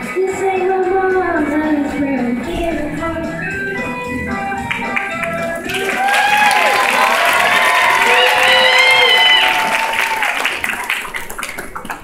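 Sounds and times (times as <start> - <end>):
audience applauding: 4.4 - 12.0
cheering with whoops and shouts: 5.6 - 11.1.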